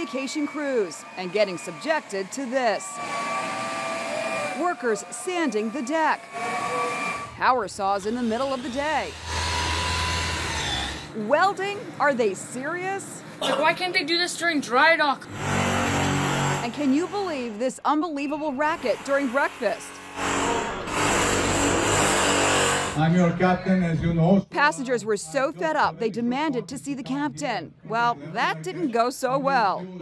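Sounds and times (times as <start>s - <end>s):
power saw whirring: 0.0s - 11.1s, 15.3s - 17.6s, 18.6s - 23.0s.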